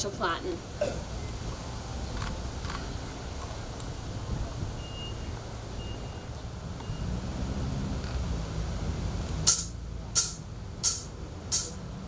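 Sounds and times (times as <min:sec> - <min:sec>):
low engine rumble: 0:00.0 - 0:12.0
reversing beeper beeps: 0:04.8 - 0:07.1.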